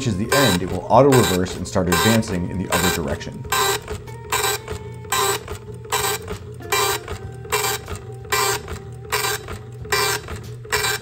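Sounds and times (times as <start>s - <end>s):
impact printer print-head chatter: 0.0s - 11.0s.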